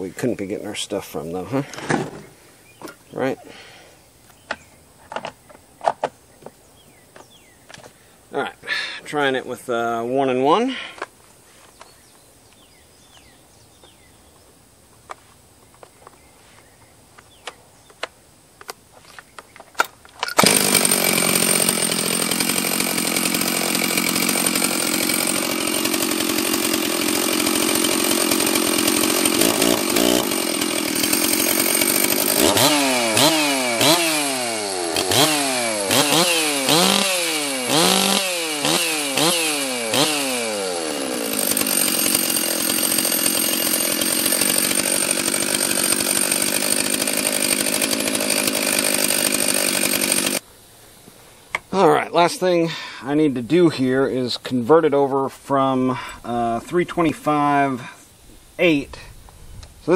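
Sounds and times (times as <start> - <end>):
chainsaw running and revving: 20.4 - 50.4.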